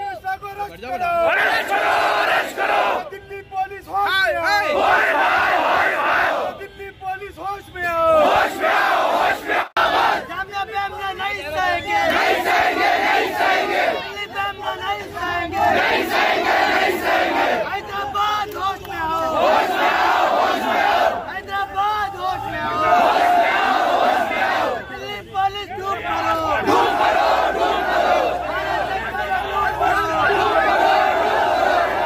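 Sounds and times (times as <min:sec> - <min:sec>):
crowd of men shouting slogans: 0:00.6 - 0:32.0.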